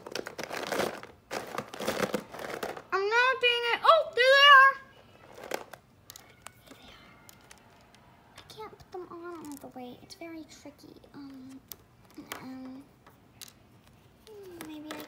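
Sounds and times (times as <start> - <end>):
toys crinkling and rustling: 0.0 - 15.0.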